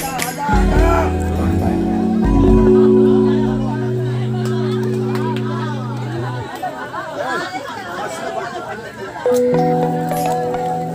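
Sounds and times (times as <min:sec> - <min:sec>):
chatter of people talking: 0:00.0 - 0:10.9
held musical chord: 0:00.5 - 0:07.4.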